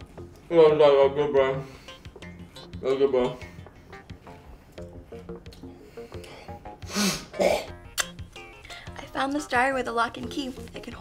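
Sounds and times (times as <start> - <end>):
background music: 0.0 - 11.0
person clearing throat: 6.9 - 7.8.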